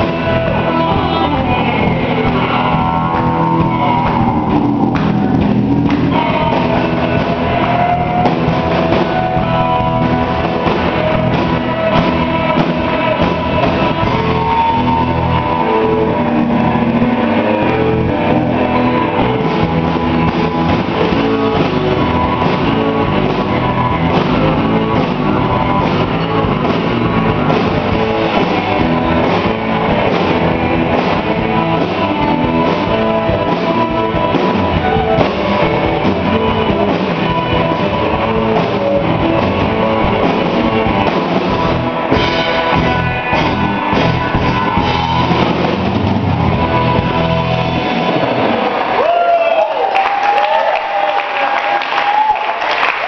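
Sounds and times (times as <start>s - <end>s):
live surf rock band: 0.0s - 53.0s.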